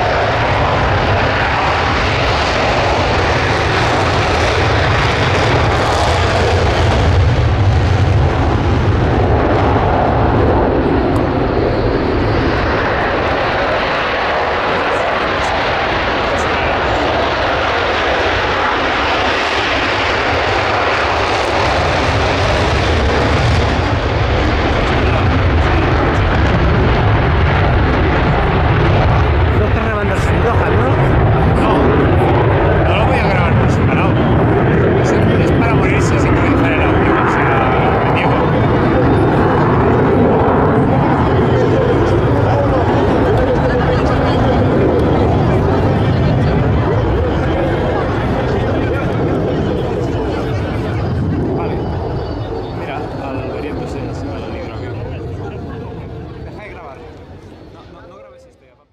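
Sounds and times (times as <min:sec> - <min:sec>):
jet engine roar: 0:00.0 - 0:58.9.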